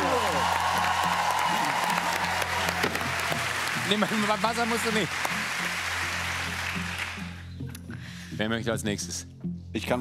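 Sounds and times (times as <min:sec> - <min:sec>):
audience applause: 0:00.0 - 0:07.4.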